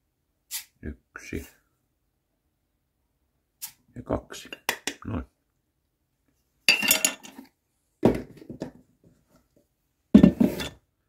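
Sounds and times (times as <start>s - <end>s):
kitchen utensils clinking: 6.7s - 7.4s.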